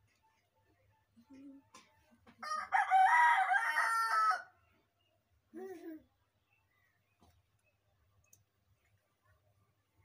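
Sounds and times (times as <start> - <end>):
rooster crowing: 2.4 - 4.5.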